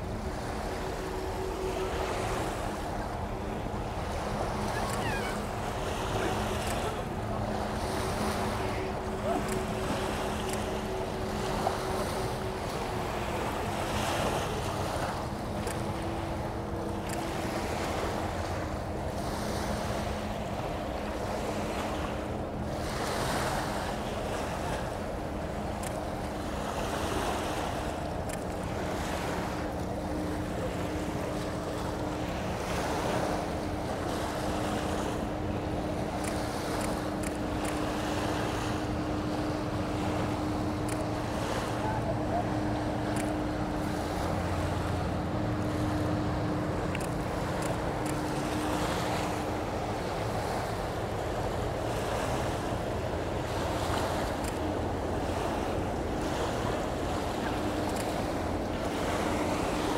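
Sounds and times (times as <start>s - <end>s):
low drone of ship engines: 0.0s - 59.9s
small waves washing onto shore: 0.0s - 59.9s.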